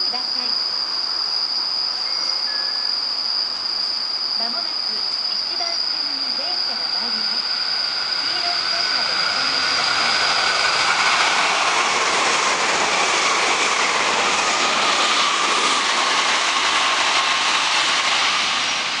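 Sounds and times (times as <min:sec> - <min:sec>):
thin high tone: 0:00.0 - 0:11.1
train rushing through station: 0:00.0 - 0:19.0.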